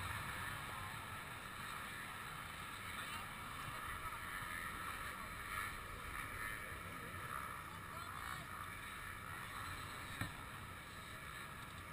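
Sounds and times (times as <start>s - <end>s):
dirt bike engines idling: 0.0s - 11.9s.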